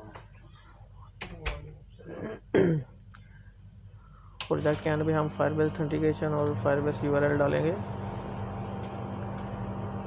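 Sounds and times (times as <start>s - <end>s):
person clearing throat: 2.0s - 3.0s.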